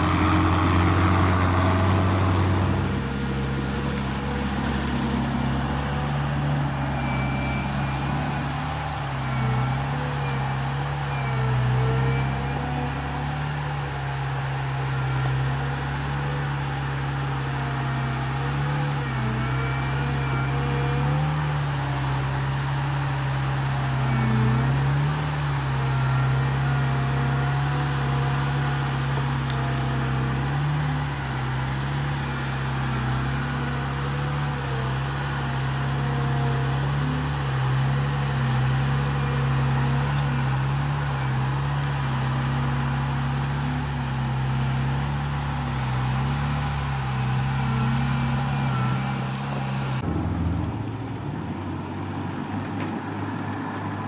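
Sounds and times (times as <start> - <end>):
tracked vehicle engine running: 0.0 - 54.0.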